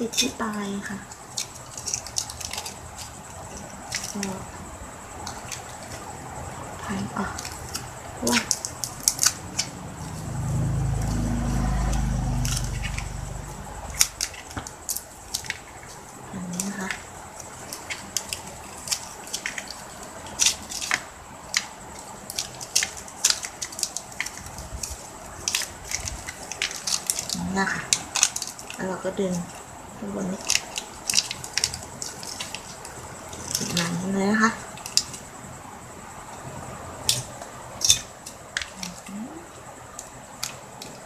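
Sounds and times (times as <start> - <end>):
low motor rumble: 6.1 - 14.8.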